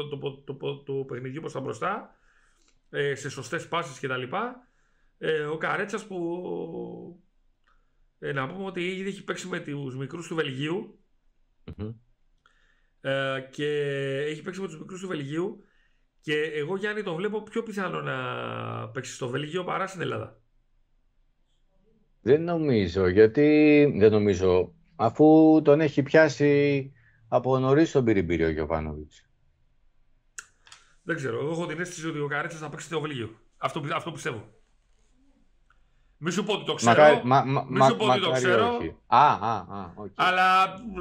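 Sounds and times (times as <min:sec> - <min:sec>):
mouth click: 0:30.3 - 0:30.9.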